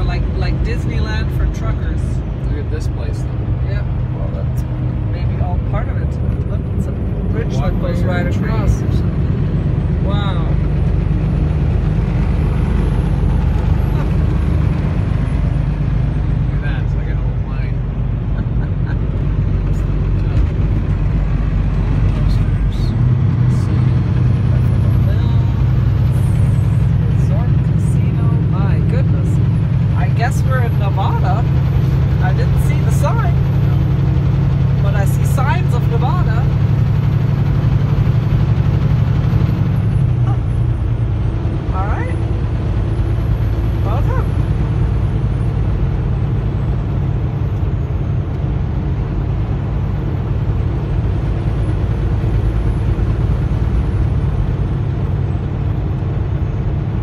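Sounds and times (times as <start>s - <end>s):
truck diesel engine droning: 0.0s - 57.0s
tyre and road noise: 0.0s - 57.0s.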